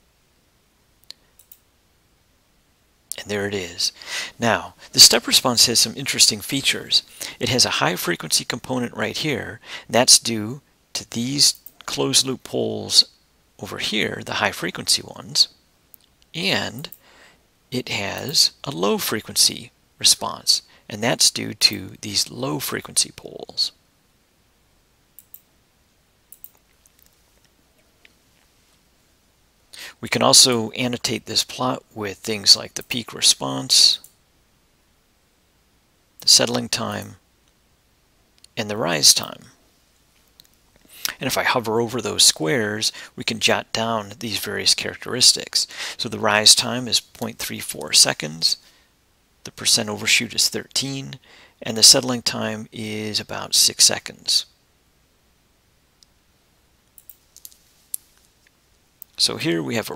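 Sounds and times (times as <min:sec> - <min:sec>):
computer mouse clicks: 0:01.0 - 0:01.6, 0:25.2 - 0:25.5, 0:26.3 - 0:27.1, 0:57.0 - 0:57.6.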